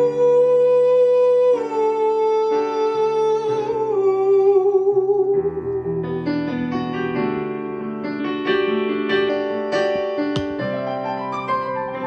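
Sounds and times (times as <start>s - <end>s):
man singing wordless held notes: 0.0s - 6.3s
digital piano chords: 5.0s - 12.0s.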